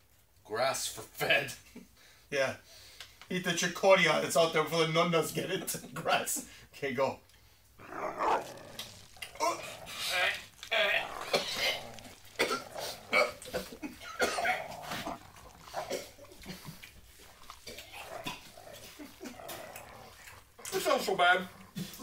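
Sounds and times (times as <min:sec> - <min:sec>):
men coughing and gagging: 0:10.7 - 0:19.7
men laughing: 0:13.2 - 0:14.8, 0:18.8 - 0:19.4.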